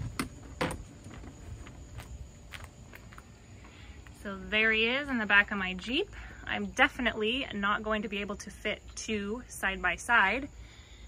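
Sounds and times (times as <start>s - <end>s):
light footsteps on pavement: 0.0s - 4.3s.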